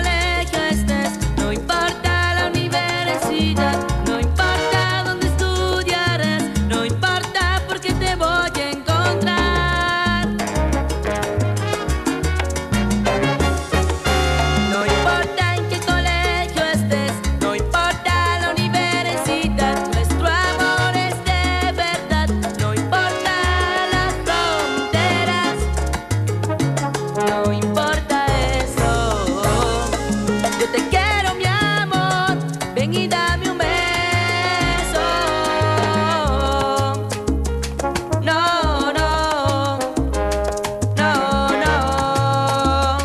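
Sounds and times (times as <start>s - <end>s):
bass notes: 0.0s - 43.0s
percussion: 0.0s - 43.0s
salsa brass section: 0.0s - 43.0s
brass section playing: 3.2s - 5.2s, 10.5s - 15.6s, 23.1s - 27.8s, 28.8s - 31.0s, 34.4s - 36.3s, 40.1s - 42.2s.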